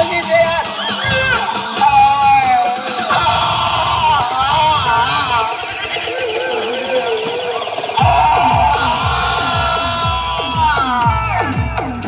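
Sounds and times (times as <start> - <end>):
deep electronic bass beat: 0.0 - 12.0
wavering melody: 4.2 - 9.9.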